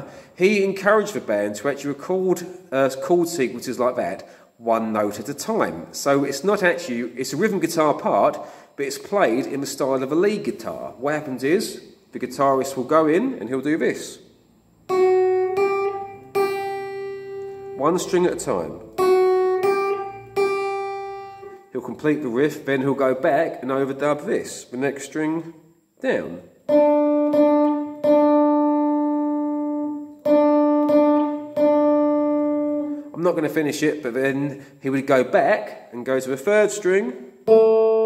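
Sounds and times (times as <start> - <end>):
electric guitar picking single notes: 14.2 - 22.0, 26.2 - 33.2, 37.4 - 38.0.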